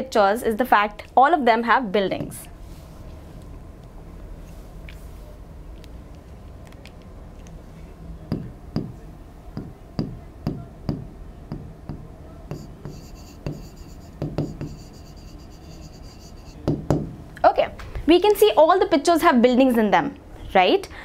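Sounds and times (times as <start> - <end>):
stylus tapping on touchscreen: 9.6 - 15.4.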